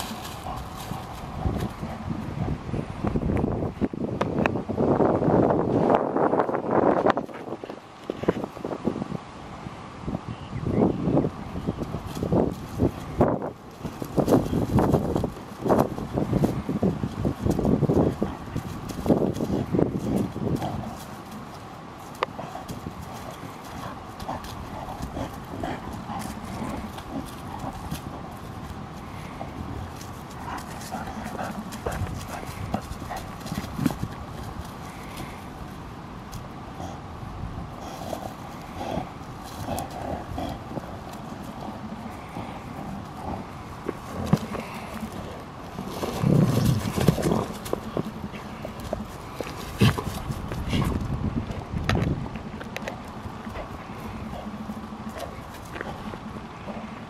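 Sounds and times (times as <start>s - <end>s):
paws scuffling on leaves: 0.0s - 2.3s, 11.8s - 36.6s, 37.8s - 51.4s
dogs play growling: 0.0s - 3.4s, 11.8s - 57.0s.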